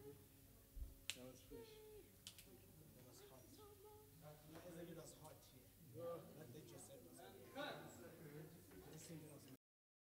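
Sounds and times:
faint voices talking quietly: 0:00.0 - 0:09.6.

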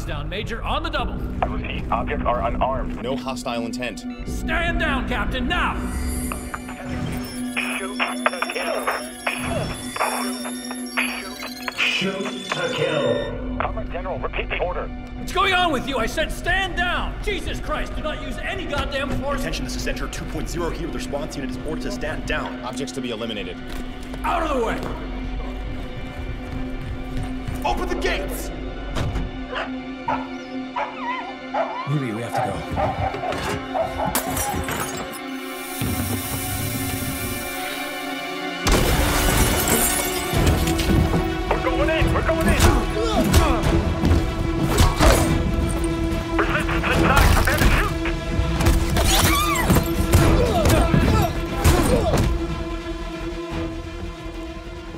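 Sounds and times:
film score music: 0:00.0 - 0:54.9
electronic display beeps: 0:06.4 - 0:13.4
glass shattering crash: 0:38.7 - 0:40.9.

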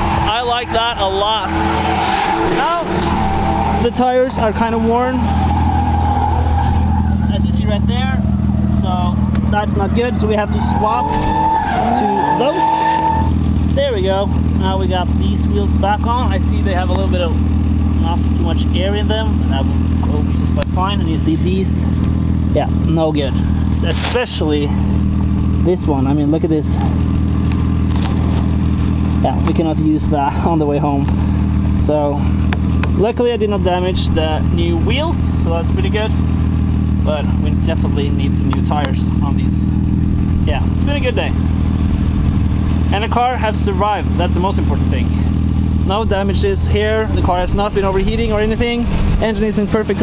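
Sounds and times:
car engine running steadily: 0:00.0 - 0:50.0.

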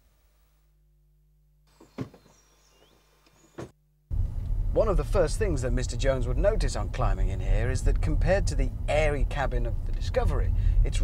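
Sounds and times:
birds chirping: 0:01.7 - 0:03.7.

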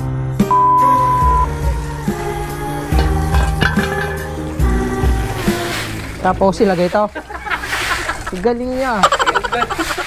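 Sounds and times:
garden hose spraying concrete: 0:01.6 - 0:10.0.

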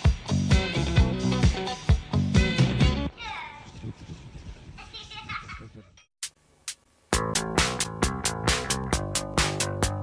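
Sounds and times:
music with strong beat: 0:00.0 - 0:03.0, 0:06.2 - 0:10.0.

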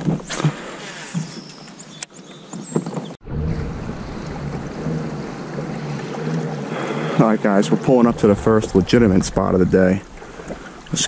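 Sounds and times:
water and wind noise: 0:00.0 - 0:11.0
steady rumble: 0:03.2 - 0:10.7.

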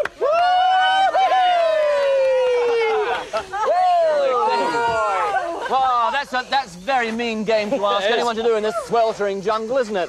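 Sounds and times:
long high shout: 0:00.0 - 0:05.7
people shouting: 0:00.0 - 0:06.2.

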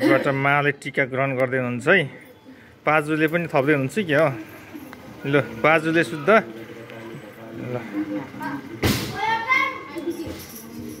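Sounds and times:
background chatter: 0:00.0 - 0:11.0
child's high-pitched voice: 0:08.4 - 0:10.6
sharp knock: 0:08.8 - 0:09.2.

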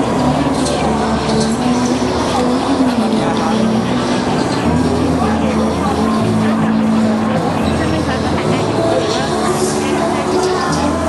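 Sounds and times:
crowd chatter: 0:00.0 - 0:11.0
music from sound system: 0:00.0 - 0:11.0.

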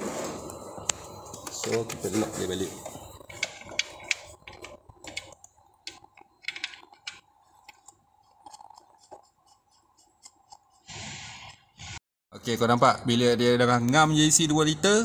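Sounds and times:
faint steady hum: 0:00.0 - 0:10.9.

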